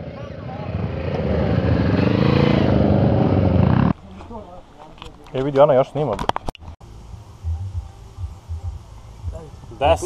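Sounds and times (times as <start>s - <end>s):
motorcycle engine passing by: 0.0s - 4.0s.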